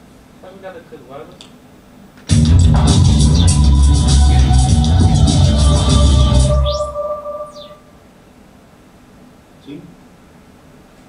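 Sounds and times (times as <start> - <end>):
held electronic chord: 2.3 - 8.0.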